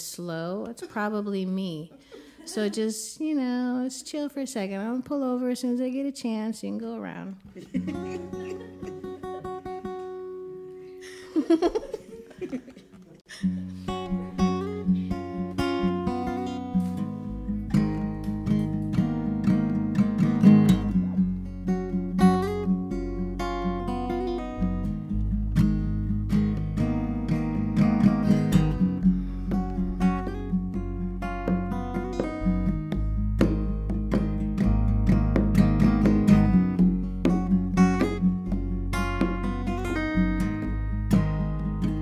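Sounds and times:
acoustic guitar strummed: 7.6s - 11.2s, 13.3s - 42.0s
low bass line: 20.7s - 42.0s
congas played by hand: 29.4s - 42.0s.

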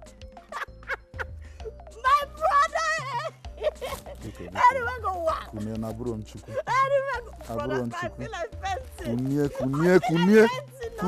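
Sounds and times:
woman crying out excitedly: 2.0s - 3.9s.

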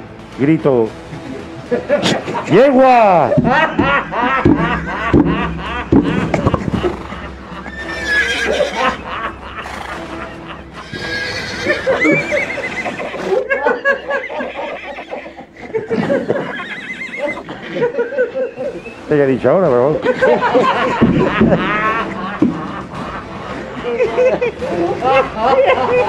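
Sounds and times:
horse whinnying: 5.9s - 9.0s, 9.6s - 17.9s.

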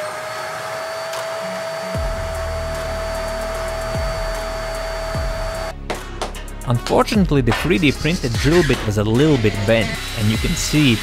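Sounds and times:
vacuum motor high whine: 0.0s - 5.7s.

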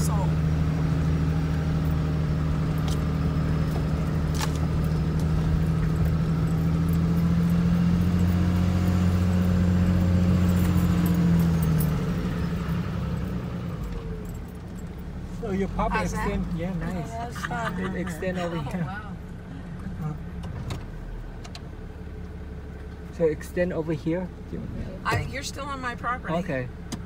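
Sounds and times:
truck engine running: 0.0s - 27.0s.

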